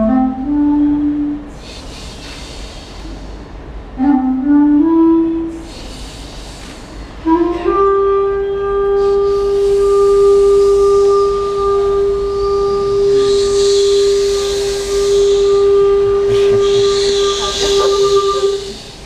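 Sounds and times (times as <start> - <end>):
wooden flute holding a note: 4.0 - 5.8, 7.2 - 18.8.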